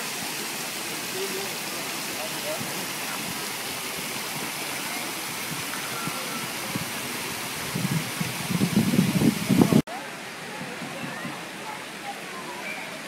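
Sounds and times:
fountain water splashing: 0:00.0 - 0:13.0.

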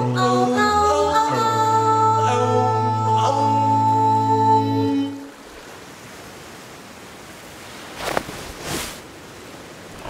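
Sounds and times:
calm sea water: 0:00.0 - 0:10.0.

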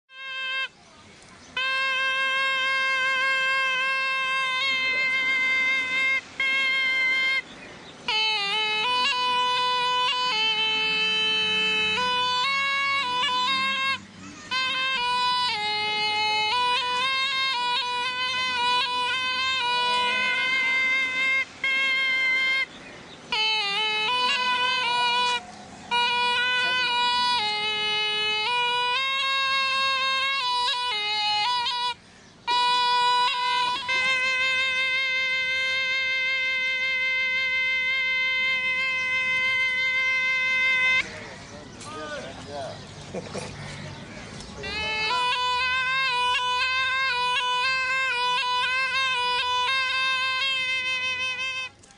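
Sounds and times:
pungi playing a melody: 0:00.1 - 0:51.9.

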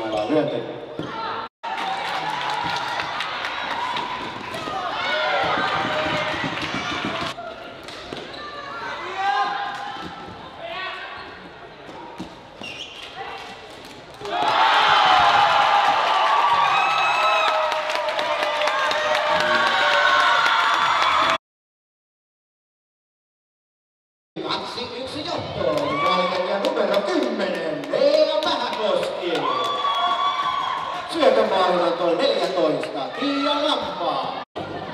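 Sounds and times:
crowd cheering: 0:01.6 - 0:07.4, 0:14.2 - 0:21.4, 0:28.6 - 0:31.5.

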